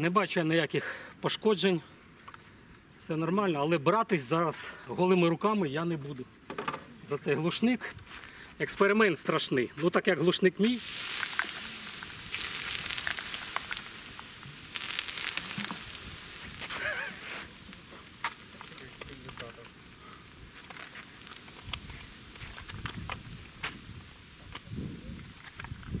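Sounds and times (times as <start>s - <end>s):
water sizzling on hot metal: 10.6s - 26.0s
metal ticking as it cools: 10.9s - 23.3s.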